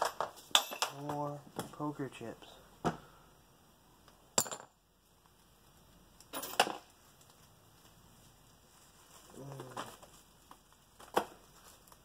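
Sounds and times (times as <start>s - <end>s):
gloved hands rummaging in pockets: 6.8s - 12.0s.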